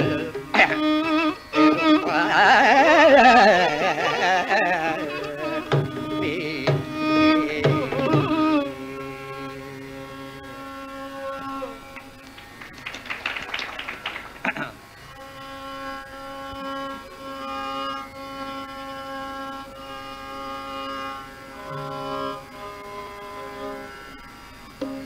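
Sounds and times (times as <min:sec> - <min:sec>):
violin playing held notes: 0:00.0 - 0:12.6, 0:15.0 - 0:25.0
steady drone: 0:00.0 - 0:12.8, 0:14.5 - 0:25.0.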